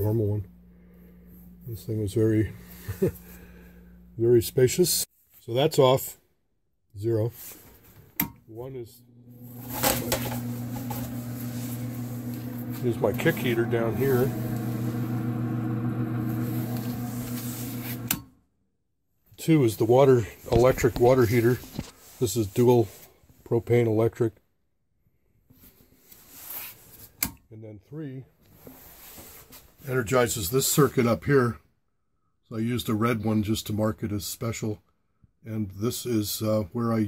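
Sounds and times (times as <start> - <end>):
heater fan motor humming: 8.6 - 18.3.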